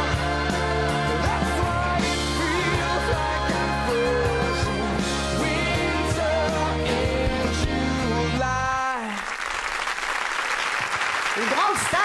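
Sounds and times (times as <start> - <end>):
studio audience applauding: 8.8 - 12.0.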